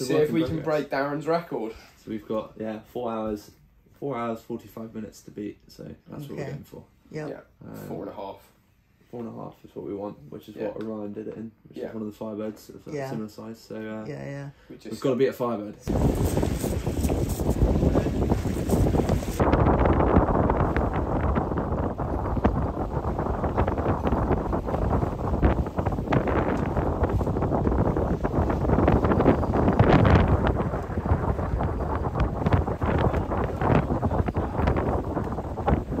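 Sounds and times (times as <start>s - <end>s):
water rushing around boat hull: 15.9s - 36.0s
wind buffeting microphone: 15.9s - 36.0s.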